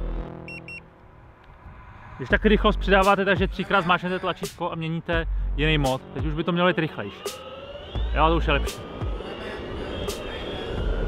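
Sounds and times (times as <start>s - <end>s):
short high electronic beeps: 0.5s - 0.8s.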